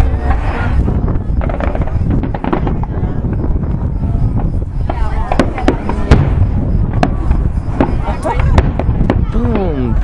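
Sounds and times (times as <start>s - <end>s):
fireworks bangs and crackles: 0.0s - 10.0s
low rumble: 0.0s - 10.0s.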